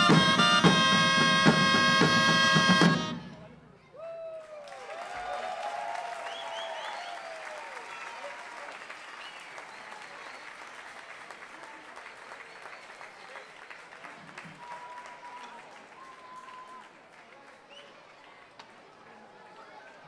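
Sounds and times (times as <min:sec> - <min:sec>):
crowd cheering: 0:00.0 - 0:20.0
crowd applauding: 0:04.2 - 0:20.0.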